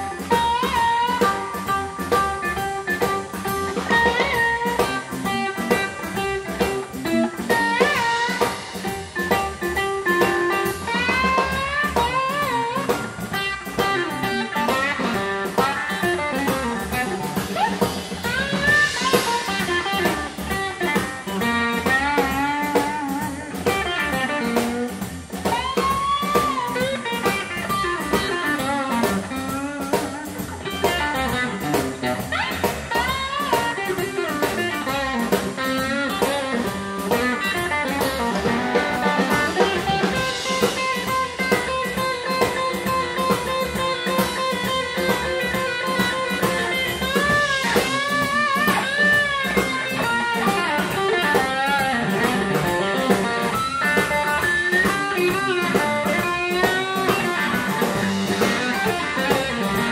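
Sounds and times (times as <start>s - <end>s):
blues band playing: 0.0s - 59.9s
electric guitar lead lines: 0.0s - 59.9s.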